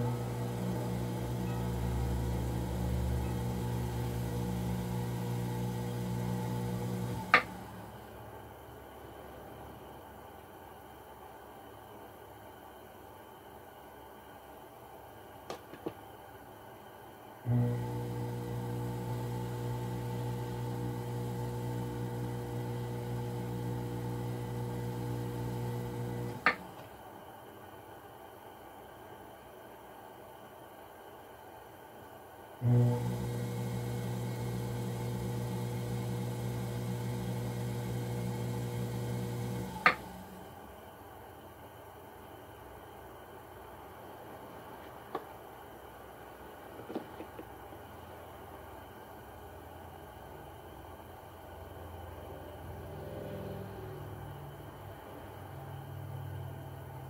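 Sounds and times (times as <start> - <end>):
potter's wheel motor hum: 0.0 - 8.1, 17.5 - 26.8, 32.6 - 40.8.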